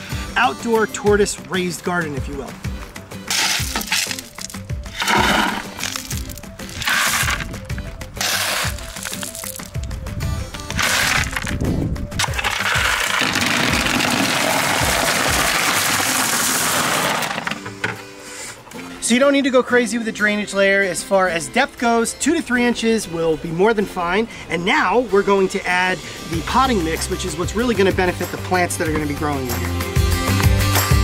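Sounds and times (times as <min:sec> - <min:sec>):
background music: 0:00.0 - 0:31.0
rush of stones: 0:03.3 - 0:09.9, 0:10.6 - 0:17.6
shovel scooping clattering stones: 0:03.3 - 0:09.9, 0:10.7 - 0:11.6, 0:12.2 - 0:17.6.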